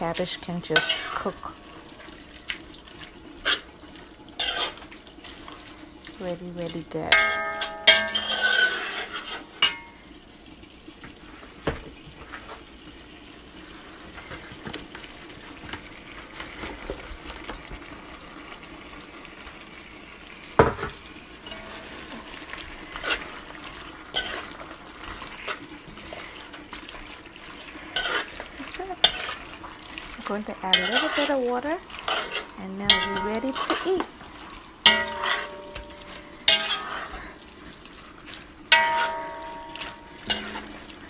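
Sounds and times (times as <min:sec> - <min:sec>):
cabbage sizzling in a pot: 0:00.0 - 0:41.0.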